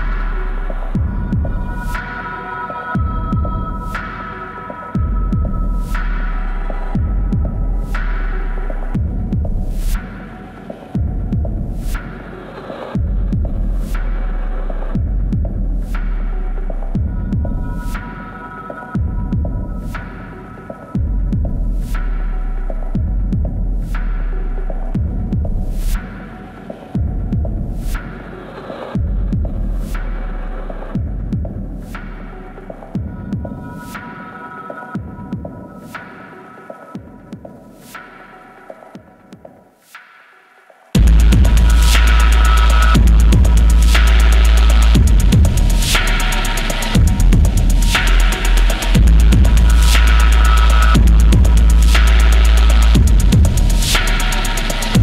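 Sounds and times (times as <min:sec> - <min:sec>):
deep sub-bass pulse: 0:00.0 - 0:02.0, 0:05.0 - 0:10.0, 0:13.0 - 0:17.9, 0:21.0 - 0:25.9, 0:41.0 - 0:55.0.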